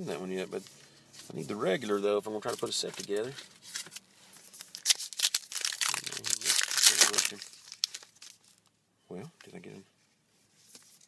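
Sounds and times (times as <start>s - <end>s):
plastic wrapper tearing and crinkling: 4.6s - 8.7s.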